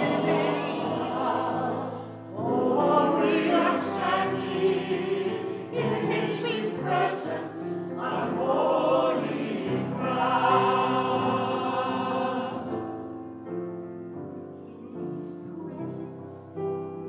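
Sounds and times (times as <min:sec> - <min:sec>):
choir singing: 0:00.0 - 0:13.3, 0:14.6 - 0:16.9.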